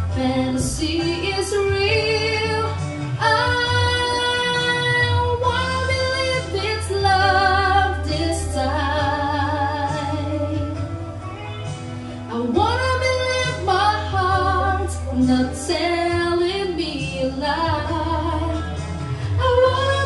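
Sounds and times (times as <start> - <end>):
woman singing with vibrato: 0.0 - 11.0, 12.2 - 20.0.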